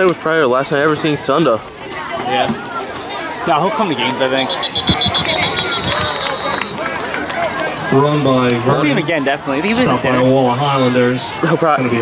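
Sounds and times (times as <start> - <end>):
spectators chattering: 0.0 - 12.0
referee whistle blast: 4.4 - 7.0.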